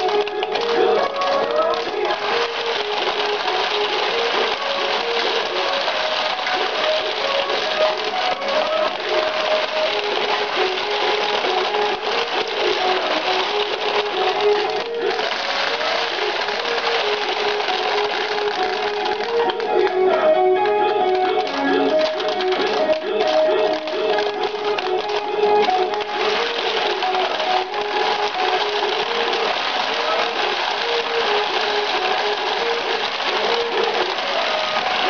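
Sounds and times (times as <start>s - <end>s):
pachinko machine melody: 0.0s - 35.0s
steel balls rattling: 0.0s - 35.0s.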